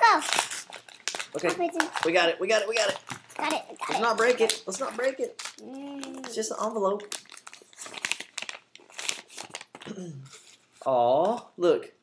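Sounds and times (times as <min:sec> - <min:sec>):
paper envelope crinkling: 0:00.0 - 0:10.7.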